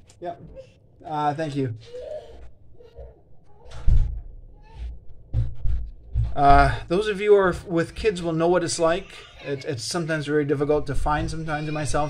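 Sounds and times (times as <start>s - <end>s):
soft knocks: 3.6s - 6.8s.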